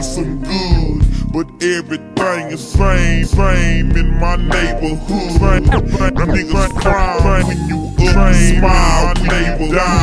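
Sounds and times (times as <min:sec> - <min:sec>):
person rapping: 0:00.0 - 0:10.0
slowed-down hip hop beat: 0:00.0 - 0:10.0.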